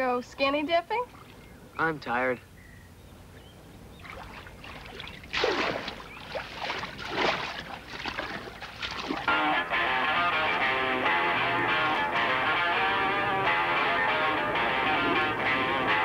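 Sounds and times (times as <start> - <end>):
person swimming splashing: 4.0 - 9.3
music: 9.3 - 16.0.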